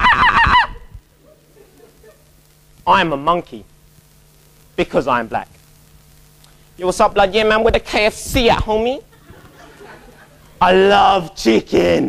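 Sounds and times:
man imitating monkey hoots: 0:00.0 - 0:02.2.

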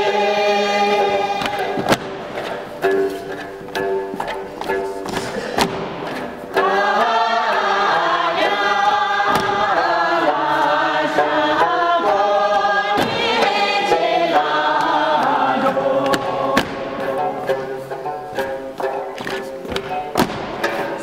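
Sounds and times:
group of voices singing: 0:00.0 - 0:02.7, 0:05.1 - 0:18.7.

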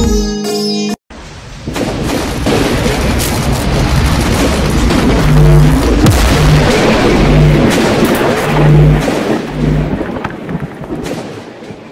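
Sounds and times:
crackles: 0:01.2 - 0:11.9
deep thunder-like rumble: 0:01.4 - 0:11.9.

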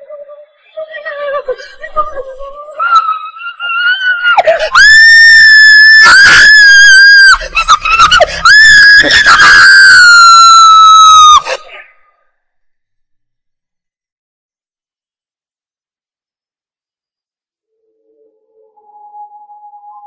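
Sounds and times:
woman screaming: 0:02.8 - 0:11.8.

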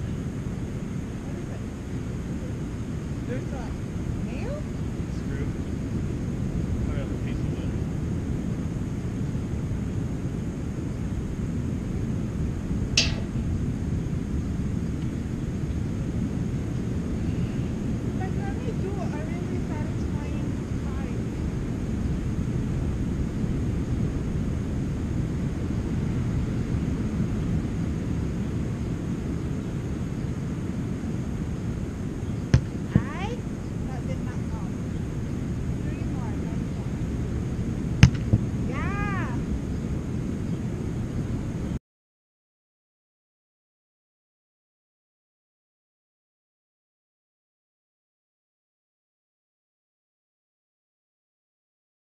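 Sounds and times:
wind buffeting microphone: 0:00.0 - 0:41.8
sharp knocks: 0:13.0 - 0:13.4, 0:38.0 - 0:38.4.

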